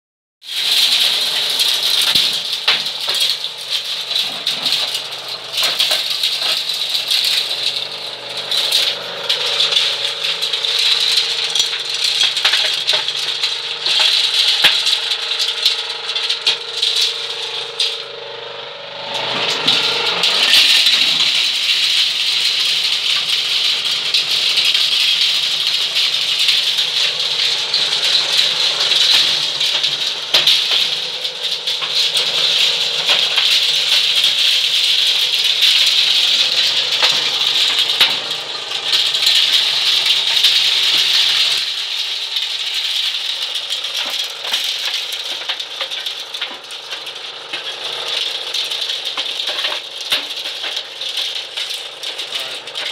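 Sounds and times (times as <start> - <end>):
corn kernels rattling in metal drum: 0.4 - 52.9
steady machine hum: 0.5 - 52.9.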